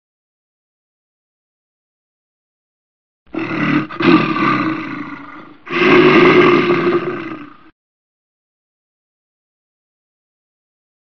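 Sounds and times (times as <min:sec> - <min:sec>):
loud roar sound effect: 0:03.3 - 0:07.7.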